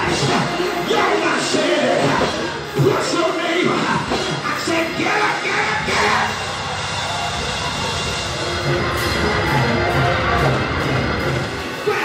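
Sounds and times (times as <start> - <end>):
band playing up-tempo groove: 0.0 - 12.0.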